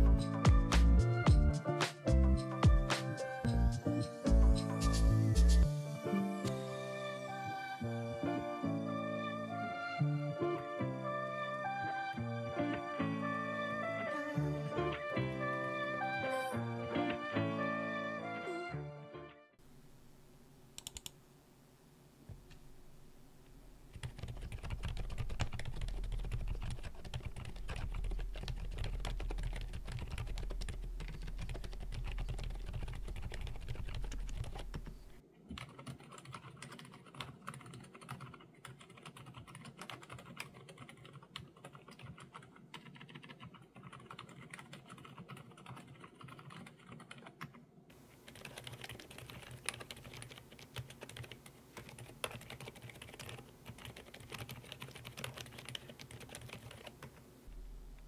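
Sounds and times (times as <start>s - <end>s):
quiet keyboard typing: 20.8s - 21.2s, 23.9s - 57.2s
low hum: 57.4s - 58.0s.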